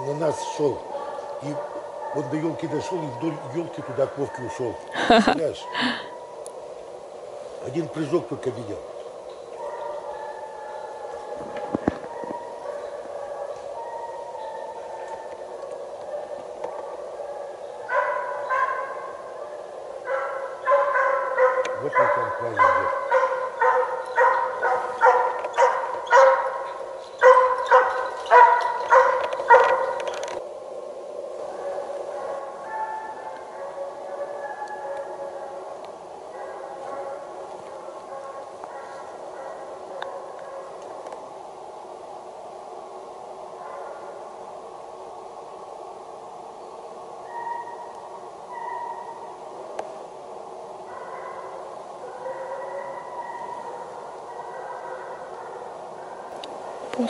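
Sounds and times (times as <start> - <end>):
hound baying: 9.6 - 30.2, 31.5 - 41.0, 48.5 - 49.3, 50.8 - 57.0.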